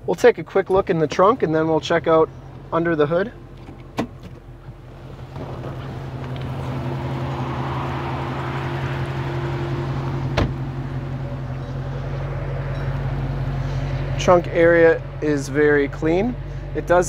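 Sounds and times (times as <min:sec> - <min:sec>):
low engine hum: 0:00.0 - 0:17.0
car door shutting: 0:03.5 - 0:06.8, 0:10.0 - 0:10.9.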